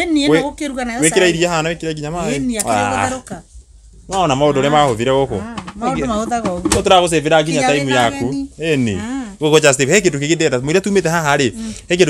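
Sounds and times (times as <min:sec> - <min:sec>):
man and woman talking: 0:00.0 - 0:03.4, 0:04.1 - 0:12.0
held hum-like voice: 0:02.2 - 0:03.4.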